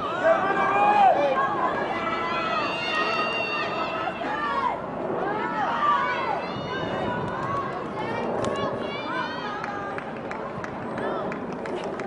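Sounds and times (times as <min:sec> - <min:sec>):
open-air background noise: 0:00.0 - 0:12.0.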